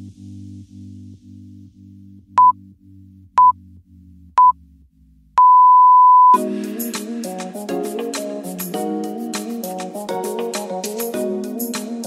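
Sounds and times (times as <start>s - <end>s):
long electronic timer beep: 5.4s - 6.4s
upbeat music: 6.2s - 12.0s.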